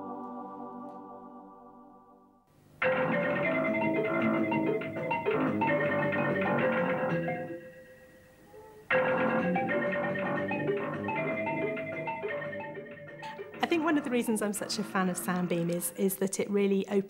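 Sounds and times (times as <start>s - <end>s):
synthesizer held tones: 2.8s - 15.2s
synthesizer marimba-like note flurries: 2.9s - 7.8s, 8.9s - 14.9s.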